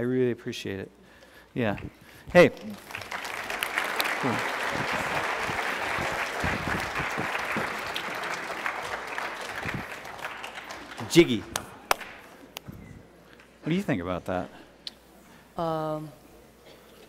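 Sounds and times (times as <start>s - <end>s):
crowd applauding: 2.5s - 12.4s.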